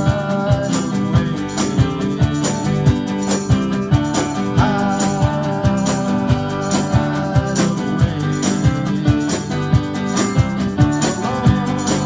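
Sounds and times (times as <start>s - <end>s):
steady drum beat: 0.0s - 12.0s
strummed acoustic guitar chords: 0.0s - 12.0s.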